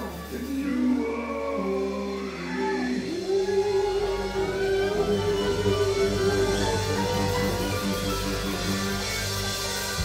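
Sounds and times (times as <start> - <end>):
live band playing: 0.0 - 10.0
fiddle sliding notes: 1.6 - 10.0.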